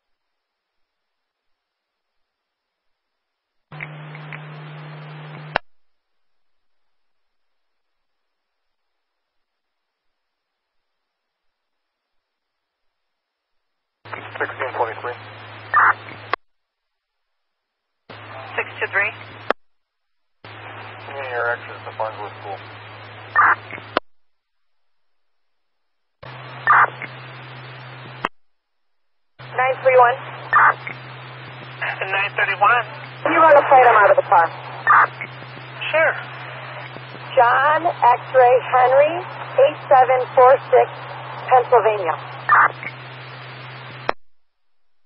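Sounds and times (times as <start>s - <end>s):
steady low hum: 0.2s - 45.0s
radio speech through scanner: 14.1s - 16.1s, 18.1s - 19.3s, 21.0s - 23.9s, 26.2s - 27.1s, 29.4s - 31.0s, 31.6s - 43.1s
loud radio burst: 23.3s - 23.8s, 26.3s - 27.2s, 29.4s - 43.4s.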